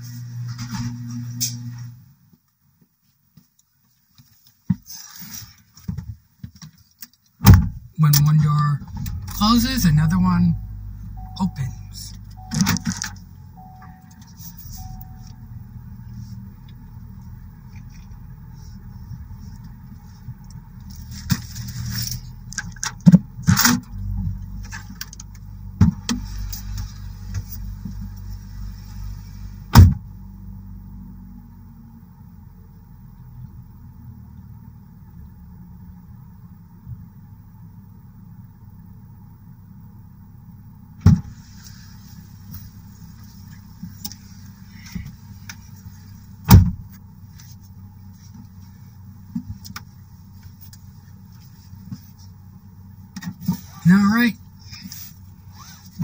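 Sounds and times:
car engine idling: 4.2 - 56.0.

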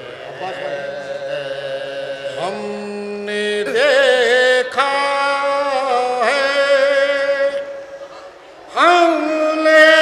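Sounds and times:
men chanting a lament: 0.0 - 7.7.

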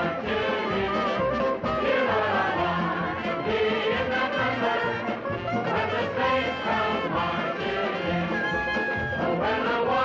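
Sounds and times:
brass band music: 0.0 - 10.0.

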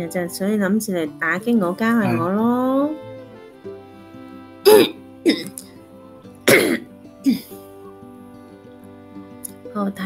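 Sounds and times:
soft background music: 0.0 - 10.0
woman coughing: 2.0 - 2.3, 4.7 - 5.6, 6.5 - 7.5.

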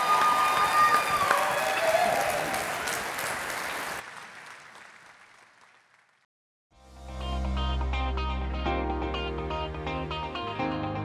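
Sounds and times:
audience applauding: 0.0 - 6.3.

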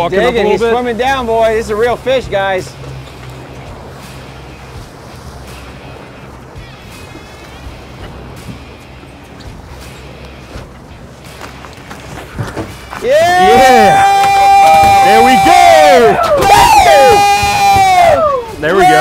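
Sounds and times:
outboard engines humming: 0.0 - 19.0
wind and water noise: 0.0 - 19.0.

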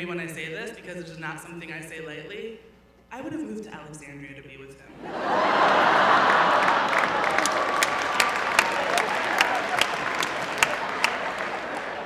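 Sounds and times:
audience laughing: 4.9 - 12.0
audience applauding: 5.1 - 12.0.

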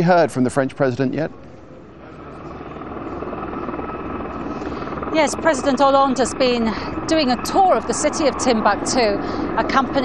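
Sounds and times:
aircraft engines droning: 0.0 - 10.0
faint steady whine: 0.0 - 10.0.

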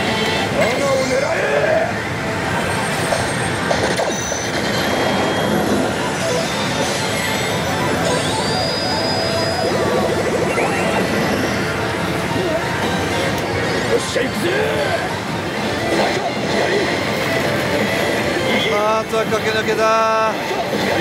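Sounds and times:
pachinko hall din: 0.0 - 21.0
electronic slot machine music: 2.8 - 21.0.

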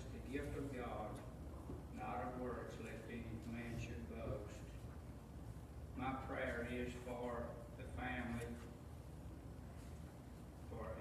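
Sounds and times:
man talking: 0.0 - 1.3, 1.9 - 4.7, 6.0 - 8.7, 10.7 - 11.0
steady low hum: 0.0 - 11.0.

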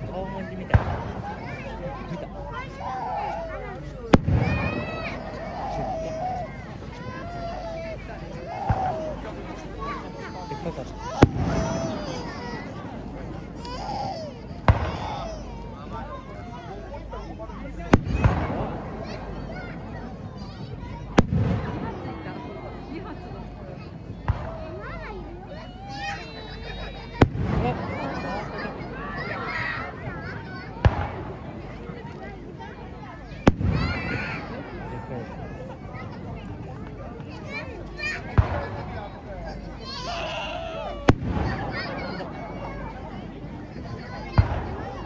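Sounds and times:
people's voices: 0.0 - 45.0
firework bang: 0.7 - 1.3, 4.1 - 5.0, 11.2 - 12.0, 14.7 - 15.1, 17.9 - 18.8, 27.1 - 28.0, 30.8 - 31.3, 33.5 - 34.1, 38.4 - 38.8, 41.1 - 42.0.

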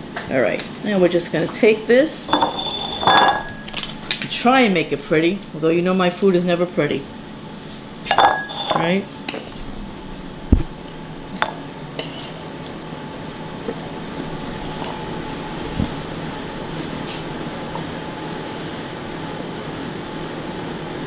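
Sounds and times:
utensils scraping a metal pan: 2.3 - 3.8, 8.1 - 9.0.

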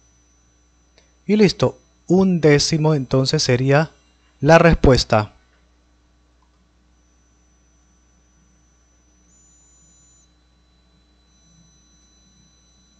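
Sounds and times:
faint background hum: 0.0 - 12.9.

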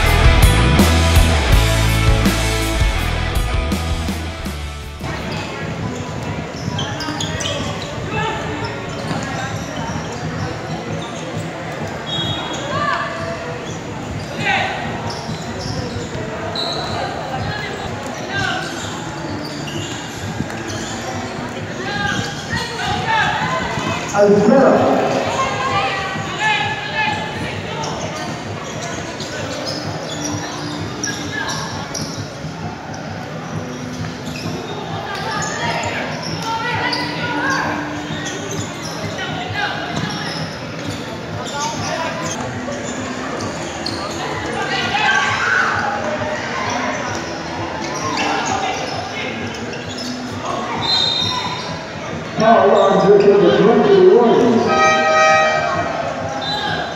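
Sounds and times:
people calling and shouting: 0.0 - 56.9.

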